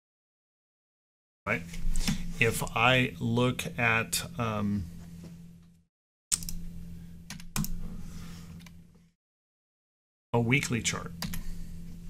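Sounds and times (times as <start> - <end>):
low steady hum: 1.5 - 5.8, 6.4 - 9.1, 10.4 - 12.0.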